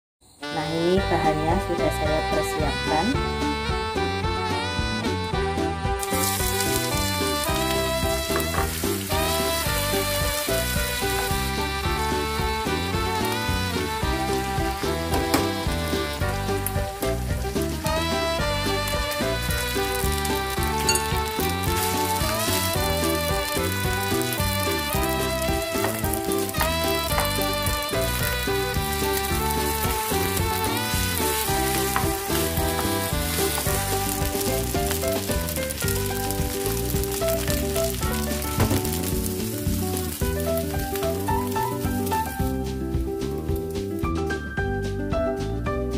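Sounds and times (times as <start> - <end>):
background music: 0.4 - 45.9
food sizzling in frying pan: 5.9 - 44.1.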